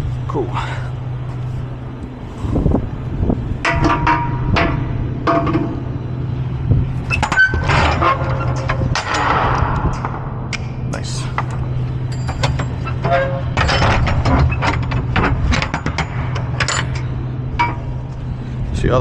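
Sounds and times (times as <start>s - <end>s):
metal door lock clanking: 7.1s - 10.2s, 11.4s - 17.9s
truck engine idling: 8.2s - 19.0s.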